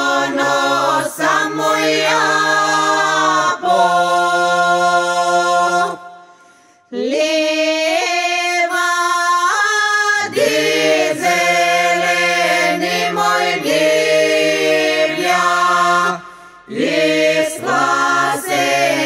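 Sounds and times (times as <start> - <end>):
men singing: 0.0 - 6.2, 7.0 - 19.0
women singing: 0.0 - 6.2, 6.9 - 19.0.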